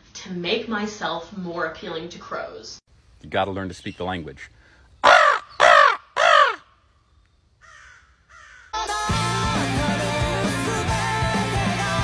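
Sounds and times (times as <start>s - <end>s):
crow cawing: 5.0s - 6.9s, 7.6s - 8.9s
rock band music with guitar: 8.9s - 12.0s.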